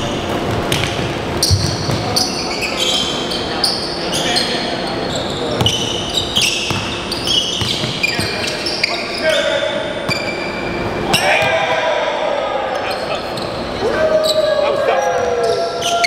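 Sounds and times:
sneakers squeaking: 0.0 - 11.8, 12.7 - 16.0
basketball bouncing: 0.3 - 2.2, 5.6 - 5.9, 6.6 - 8.4.

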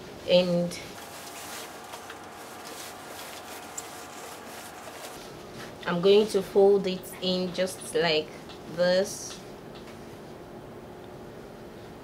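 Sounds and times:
faint steady hum: 0.0 - 12.0
fabric rustling: 0.9 - 5.8.

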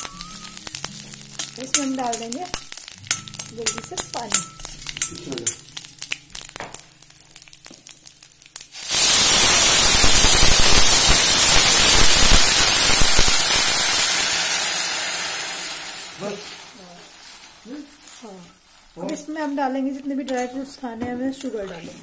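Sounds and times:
water sizzling in hot pan: 0.0 - 20.7.

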